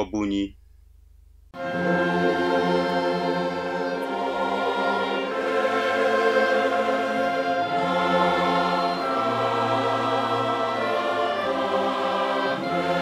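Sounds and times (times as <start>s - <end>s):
choir singing a hymn: 1.6s - 13.0s.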